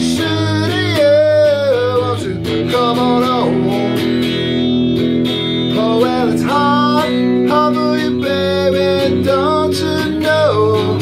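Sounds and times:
strummed electric guitar: 0.0s - 11.0s.

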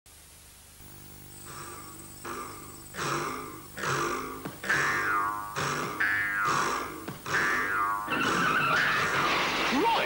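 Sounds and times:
noisy jumble: 0.4s - 10.0s
cartoon spring boing: 2.3s - 9.3s
music: 4.7s - 9.2s.

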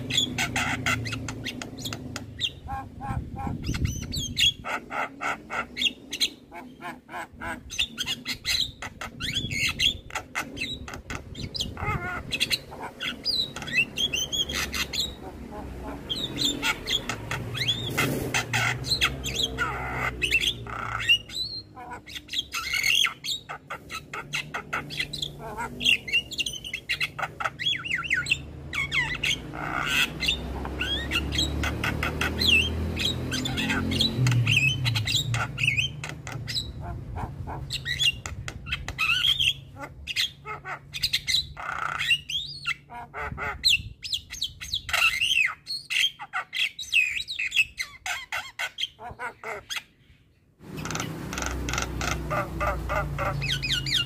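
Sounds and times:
myna squawking and chirping: 0.0s - 54.0s.

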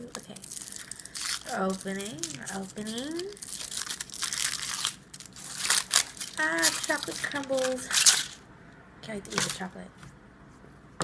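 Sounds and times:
foil wrapper crinkling: 0.0s - 8.4s, 9.3s - 9.7s.

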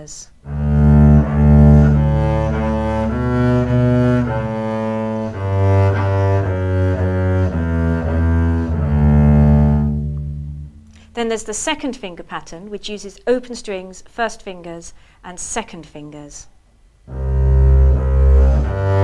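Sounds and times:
double bass bowed notes: 0.3s - 11.2s, 17.0s - 19.0s.

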